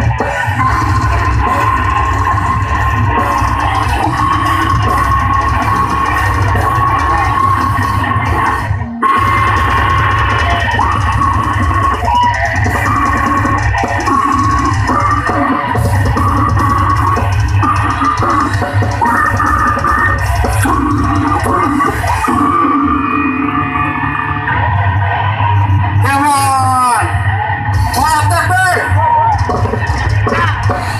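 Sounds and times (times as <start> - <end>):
drum kit: 0.0 - 27.0, 27.6 - 30.9
distorted electric guitar: 0.0 - 30.9
metal band playing live: 0.0 - 30.9.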